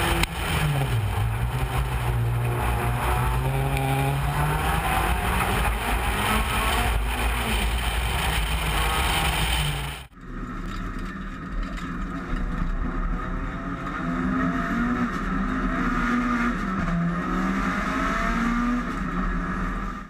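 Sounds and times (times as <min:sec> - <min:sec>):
racing car engine: 0:00.0 - 0:20.0.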